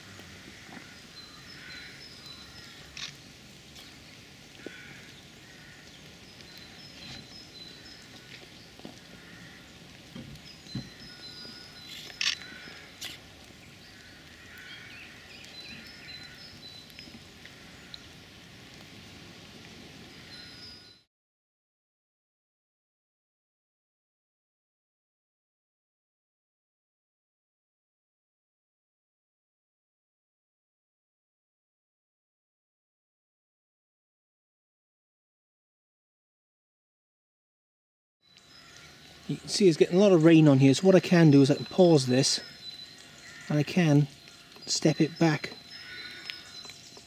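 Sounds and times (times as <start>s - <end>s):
steady low hiss: 0.0s - 21.0s, 38.3s - 47.0s
short bird calls: 10.4s - 18.2s, 38.3s - 47.0s.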